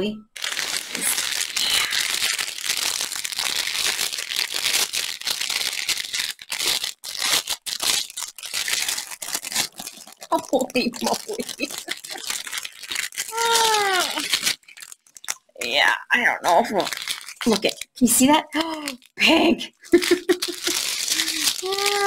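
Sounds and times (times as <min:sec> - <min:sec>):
plastic bag crinkling: 0:00.3 - 0:19.2, 0:19.9 - 0:22.0.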